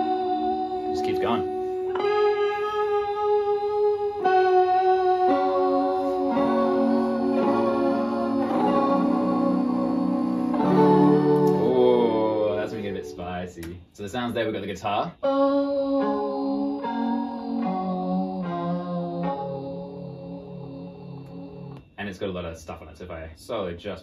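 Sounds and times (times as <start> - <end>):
effects-processed guitar chords: 0.0 - 13.4, 15.2 - 22.0.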